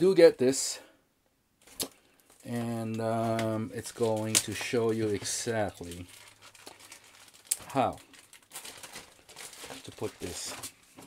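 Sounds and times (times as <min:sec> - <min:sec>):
plastic bag crinkling: 0:01.6 - 0:11.0.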